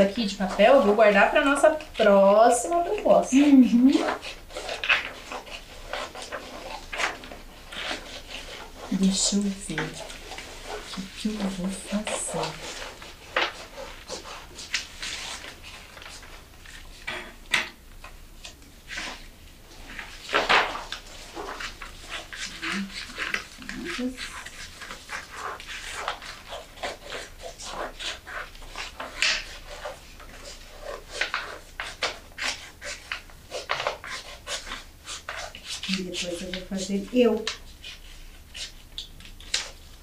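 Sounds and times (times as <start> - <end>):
scissors snipping paper: 0.0 - 16.3, 20.3 - 39.8
paper rustling and crinkling: 0.0 - 17.4, 18.0 - 40.0.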